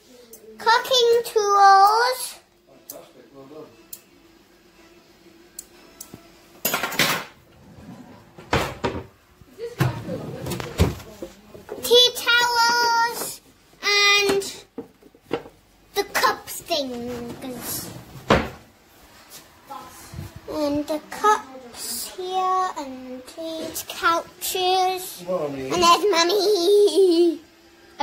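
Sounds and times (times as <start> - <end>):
cupboard door opening: 7.6 - 9.1, 18.2 - 18.6.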